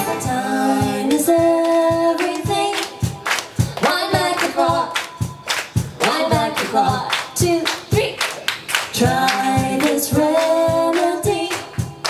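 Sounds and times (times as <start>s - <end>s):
hand-clap beat: 0.0s - 12.0s
person singing: 6.0s - 8.2s, 9.0s - 11.8s.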